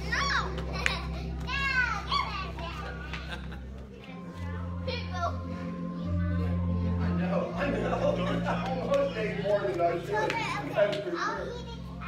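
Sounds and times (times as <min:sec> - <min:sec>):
children's voices: 0:00.0 - 0:03.4, 0:04.0 - 0:07.1, 0:10.0 - 0:12.0
overlapping chatter of people: 0:00.0 - 0:12.0.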